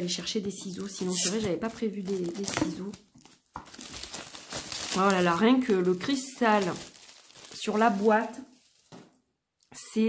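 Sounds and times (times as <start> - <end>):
plastic shrink wrap crinkling: 0.6 - 9.3.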